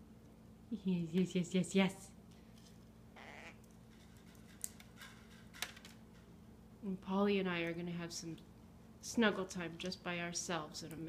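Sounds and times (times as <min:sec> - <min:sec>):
parrot soft raspy call: 0:03.2 - 0:03.6.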